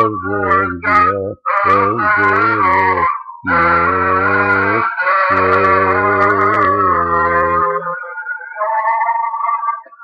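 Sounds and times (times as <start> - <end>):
man singing: 0.0 - 8.9.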